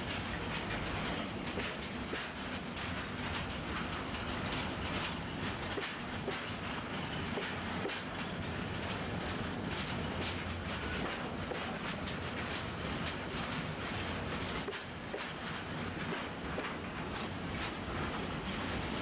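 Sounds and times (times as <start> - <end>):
wheels clicking over rail joints: 0.0 - 19.0.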